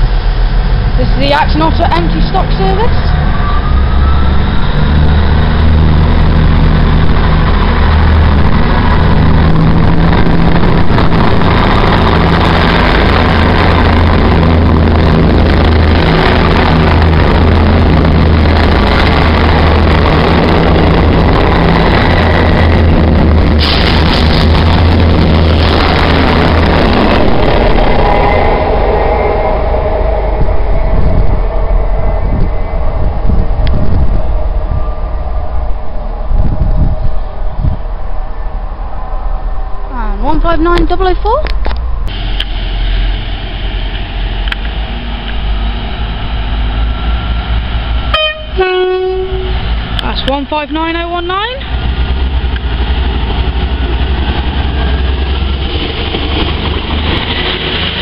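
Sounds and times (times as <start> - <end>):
diesel train engine drone: 0.0 - 58.0.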